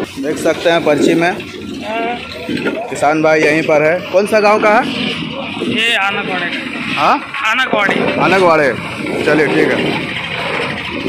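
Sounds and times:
busy outdoor market noise: 0:00.0 - 0:11.0.

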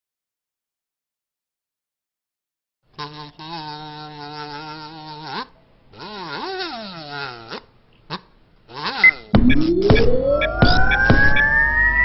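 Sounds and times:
cartoon fly buzzing: 0:03.0 - 0:07.6, 0:08.7 - 0:10.0.

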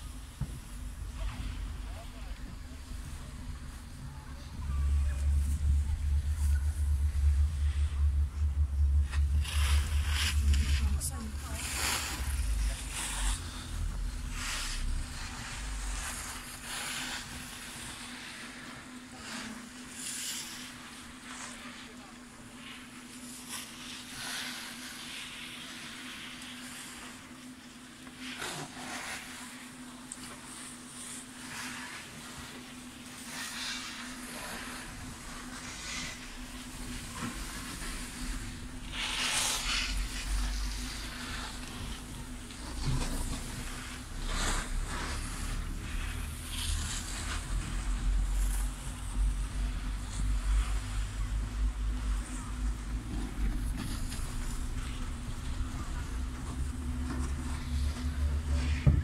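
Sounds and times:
deep rumble: 0:00.0 - 0:17.8, 0:34.3 - 0:59.0
chairlift hum: 0:00.0 - 0:58.8.

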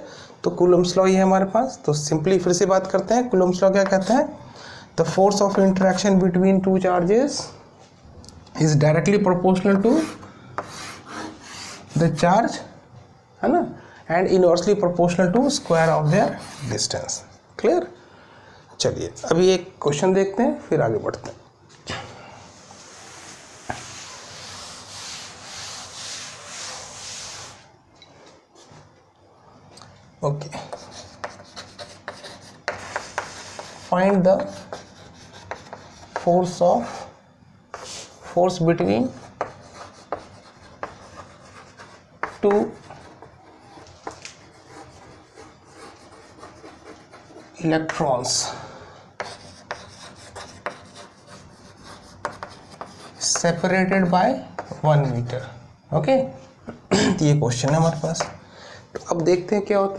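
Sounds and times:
duster rubbing on chalkboard: 0:09.8 - 0:12.2, 0:15.5 - 0:16.9, 0:22.6 - 0:27.7, 0:30.8 - 0:37.1, 0:37.7 - 0:47.6, 0:49.2 - 0:53.8.

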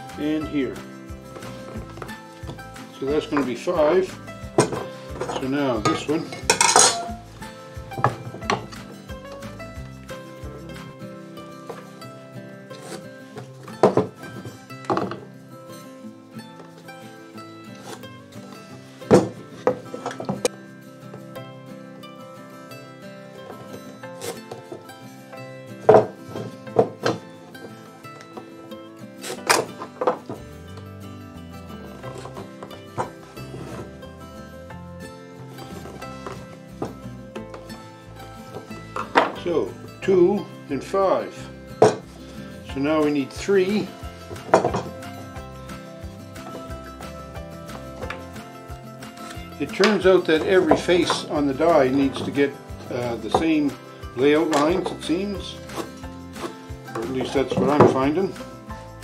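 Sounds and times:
music with held tones: 0:00.0 - 0:59.0
hand tools knocking on wood: 0:19.1 - 0:20.5, 0:43.9 - 0:45.0, 0:49.2 - 0:58.3.

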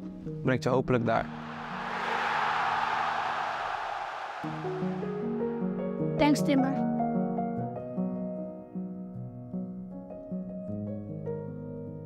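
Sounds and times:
rushing whoosh: 0:01.3 - 0:06.2.

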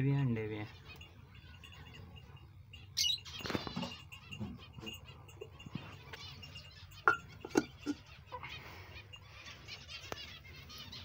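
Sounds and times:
soft bird chirps: 0:00.1 - 0:11.0.

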